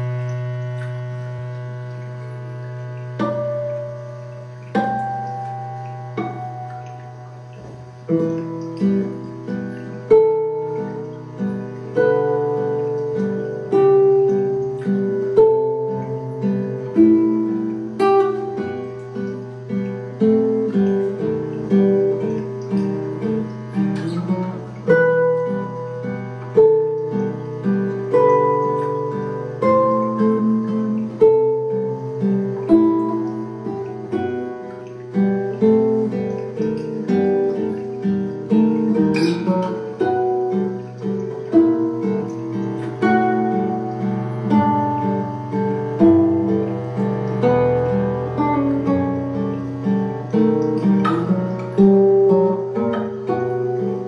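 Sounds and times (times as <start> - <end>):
plucked guitar melody: 0.0 - 54.0.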